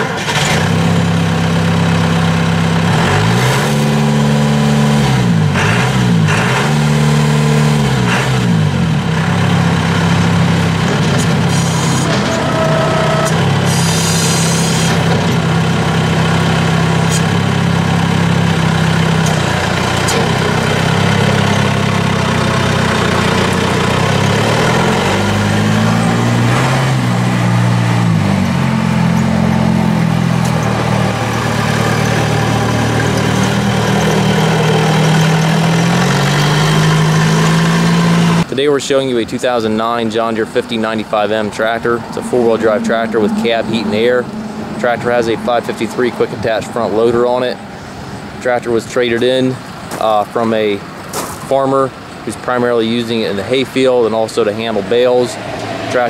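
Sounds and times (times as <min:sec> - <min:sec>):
tractor diesel engine running: 0:00.0 - 0:56.0.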